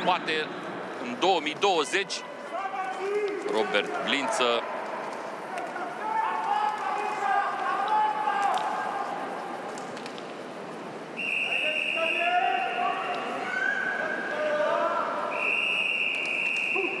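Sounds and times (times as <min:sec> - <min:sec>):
crowd noise: 0:00.0 - 0:17.0.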